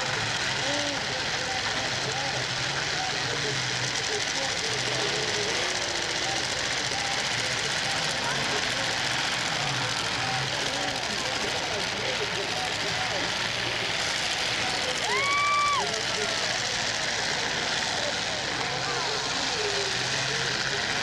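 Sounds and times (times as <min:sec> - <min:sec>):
car engines running: 0:00.0 - 0:21.0
crowd chatter and shouts: 0:00.0 - 0:21.0.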